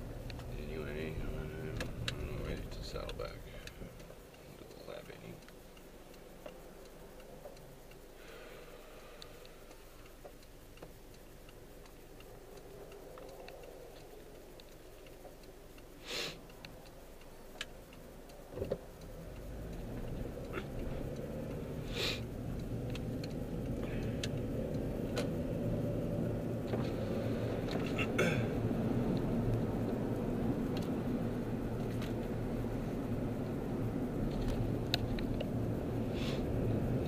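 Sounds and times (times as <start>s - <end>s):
car engine: 0.0s - 37.0s
road noise: 0.0s - 37.0s
turn signal ticking: 0.0s - 37.0s
sharp clicks: 0.2s - 37.0s.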